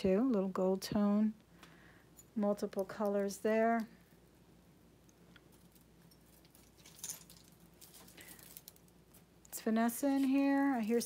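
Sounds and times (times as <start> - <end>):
jewelry clinking and jingling: 5.4 - 11.0.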